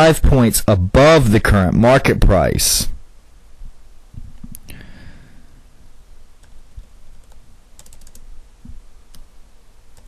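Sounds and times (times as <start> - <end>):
computer keyboard keystrokes: 7.2 - 8.3.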